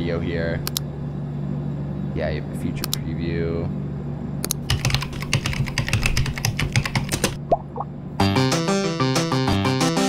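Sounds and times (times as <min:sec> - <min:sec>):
computer keyboard key clicks: 0:04.4 - 0:07.4.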